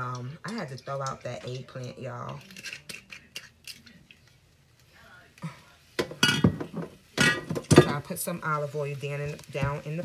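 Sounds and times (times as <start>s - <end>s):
utensils and cookware clinking: 0.0s - 4.4s, 6.0s - 10.0s.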